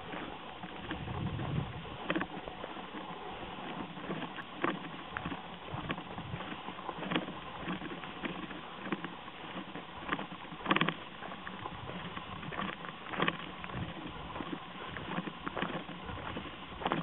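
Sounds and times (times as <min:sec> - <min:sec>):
footsteps crunching on gravel: 0:00.0 - 0:17.0
steady rustling noise: 0:00.0 - 0:17.0.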